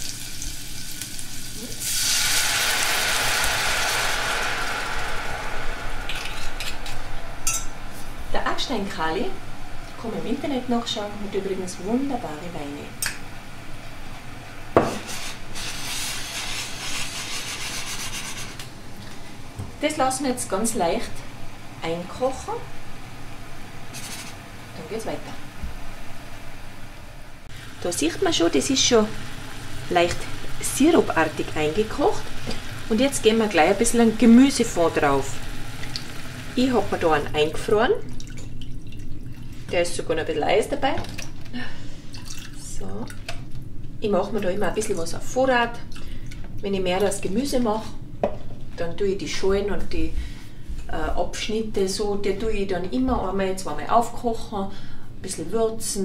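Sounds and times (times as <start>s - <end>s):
wine sizzling in hot pot: 0.0s - 43.6s
steady low hum: 2.5s - 56.0s.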